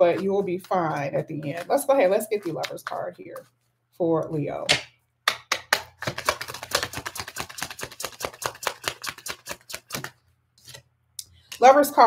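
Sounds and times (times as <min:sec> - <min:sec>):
cards being shuffled: 0:00.1 - 0:03.5, 0:05.5 - 0:10.9.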